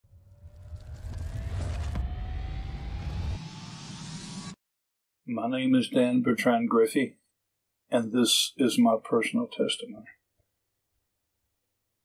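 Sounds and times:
low rumble: 0.0 - 4.6
rising tone: 0.0 - 4.6.

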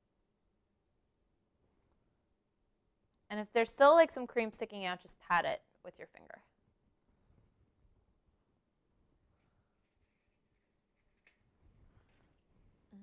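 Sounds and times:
faint soft handling sounds: 6.9 - 12.9.

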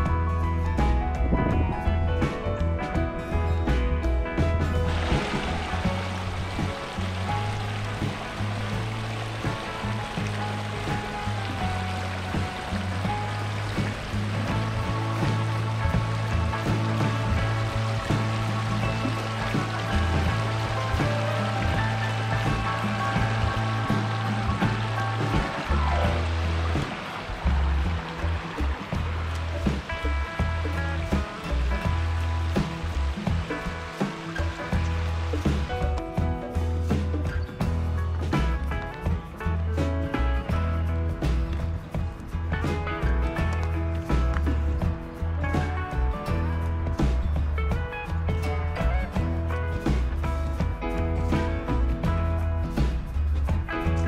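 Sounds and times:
background music with bass line: 0.0 - 54.0
creek rushing over rocks: 4.5 - 54.0.

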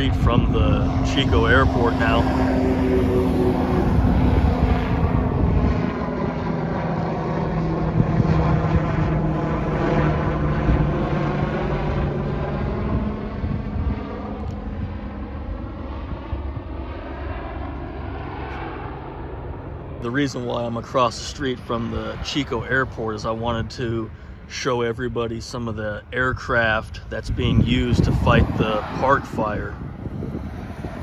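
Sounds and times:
helicopter flying overhead: 0.0 - 31.0.

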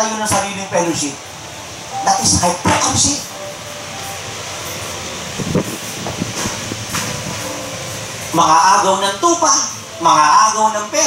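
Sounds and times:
rushing room noise: 0.0 - 11.0.

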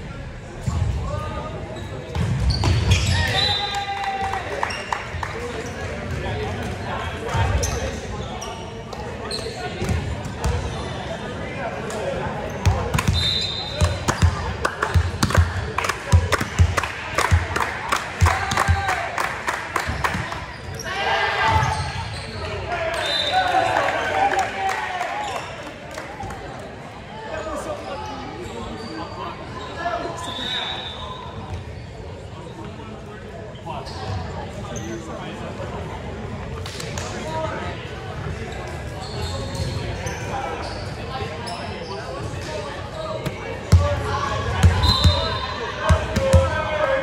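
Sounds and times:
volleyball bouncing on gym floor: 43.2 - 46.6.

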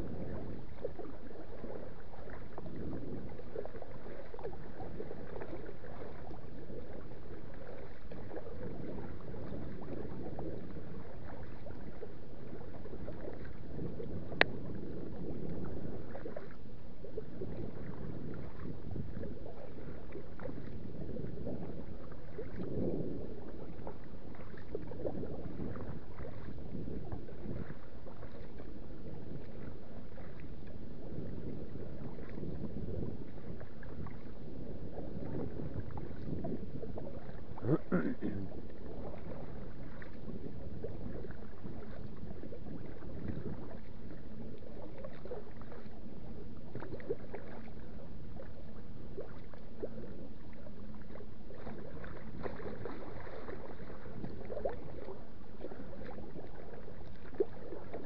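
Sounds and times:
paddle strokes splashing: 0.0 - 58.0
water lapping against kayak hull: 0.0 - 58.0.

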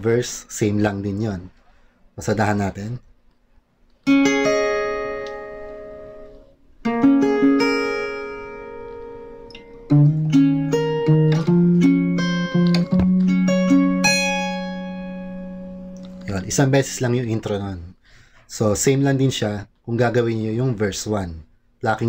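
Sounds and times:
fingerpicked acoustic guitar: 4.0 - 16.9.

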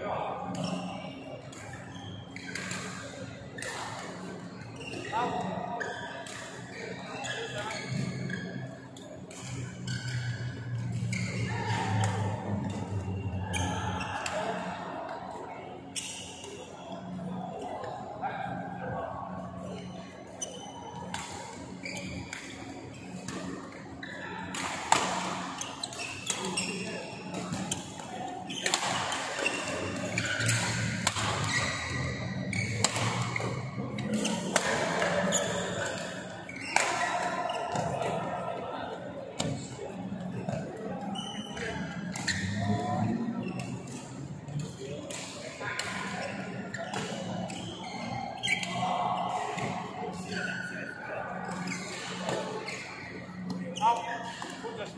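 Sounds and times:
rackets hitting shuttlecock echoing: 28.6 - 38.2.

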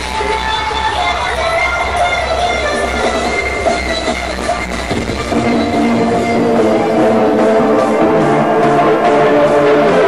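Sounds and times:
steady deep bass: 4.5 - 10.0
high held synth tones: 5.0 - 10.0.

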